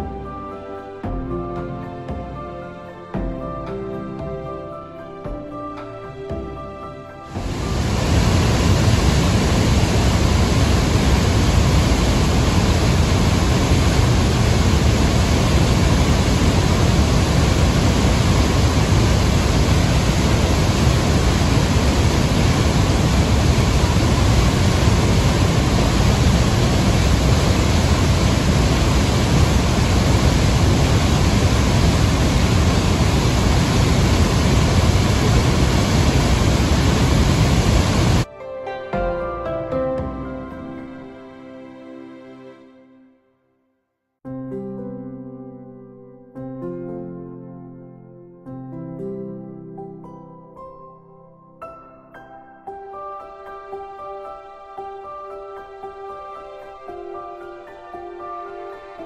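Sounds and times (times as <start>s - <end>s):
waterfall rushing: 7.3s - 38.3s.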